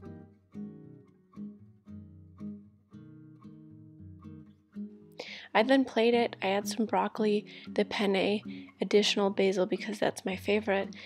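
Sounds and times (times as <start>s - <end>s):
acoustic guitar picking: 0.0s - 5.2s, 6.0s - 9.9s.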